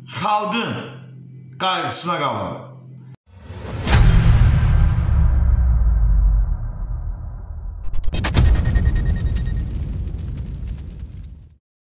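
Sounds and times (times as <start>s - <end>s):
deep rumbling cinematic boom: 3.4s - 11.6s.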